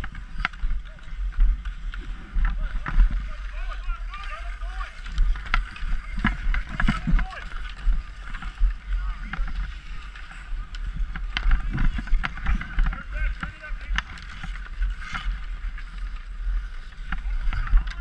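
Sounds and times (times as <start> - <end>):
skates scraping on ice: 0.0 - 18.0
sticks and puck clacking: 0.0 - 18.0.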